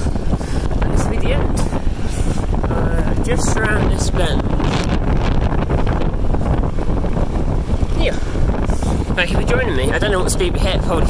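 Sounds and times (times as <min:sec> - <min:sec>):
wind buffeting on microphone: 0:00.0 - 0:11.0.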